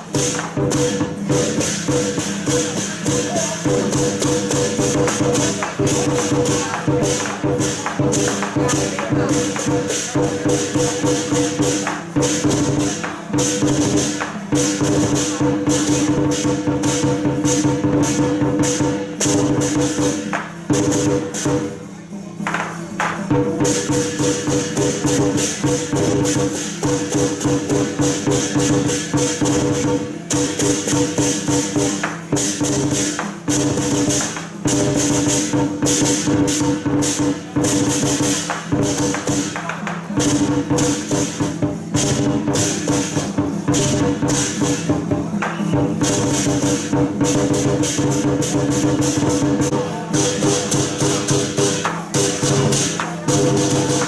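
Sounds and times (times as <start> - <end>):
clashing cymbals: 0.0 - 54.0
drum beaten fast: 0.0 - 54.0.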